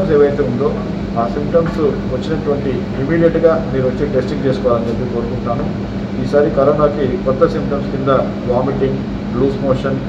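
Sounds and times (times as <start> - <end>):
man speaking into microphones: 0.0 - 10.0.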